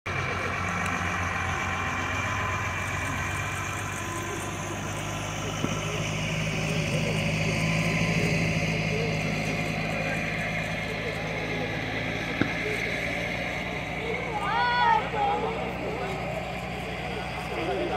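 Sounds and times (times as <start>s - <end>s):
spectators' voices: 0.1s - 17.9s
tow tractor engine running: 0.1s - 17.9s.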